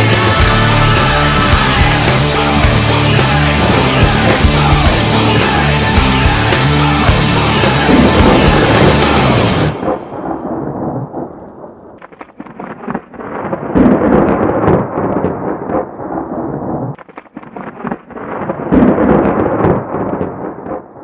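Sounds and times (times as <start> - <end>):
thunder rolling: 7.3 - 21.0
thunder cracks: 7.4 - 21.0.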